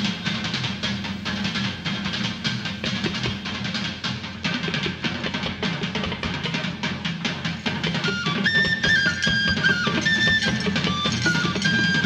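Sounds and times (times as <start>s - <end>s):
drum kit: 0.0s - 12.0s.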